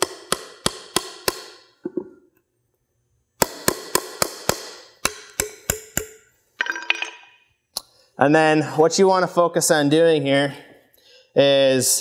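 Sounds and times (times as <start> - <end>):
hammer hitting nail into wood: 0.0 - 1.6, 3.4 - 6.2.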